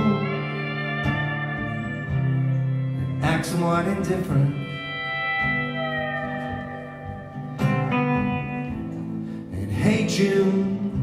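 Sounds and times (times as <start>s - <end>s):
pedal steel guitar sliding chord: 0.0s - 9.4s
acoustic guitar: 0.0s - 11.0s.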